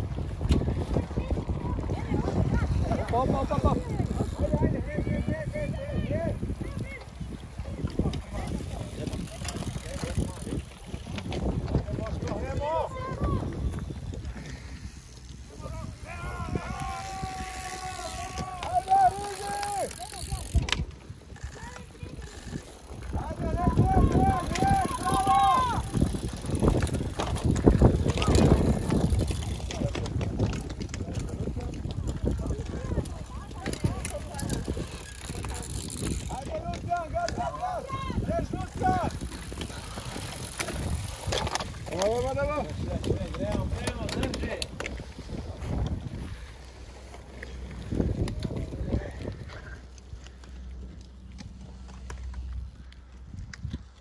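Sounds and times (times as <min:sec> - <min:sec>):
bikes rattling and clicking: 0:00.0 - 0:54.0
wind buffeting microphone: 0:00.0 - 0:54.0
faint spectators' voices: 0:00.4 - 0:41.4.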